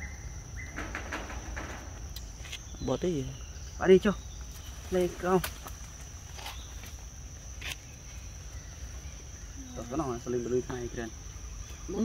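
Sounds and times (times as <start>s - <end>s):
insect drone: 0.0s - 12.0s.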